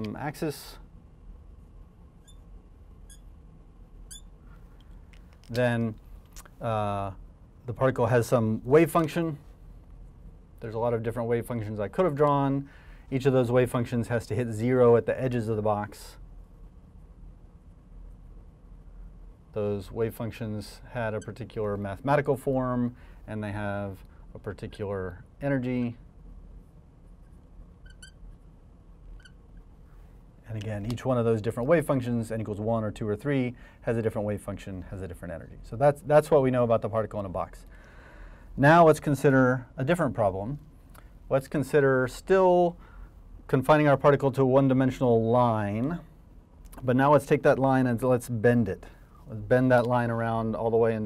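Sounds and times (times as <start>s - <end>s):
faint room hum: 0.0s - 51.0s
marker squeaking on glass: 2.2s - 3.4s, 4.0s - 4.5s, 21.1s - 21.5s, 27.2s - 29.6s.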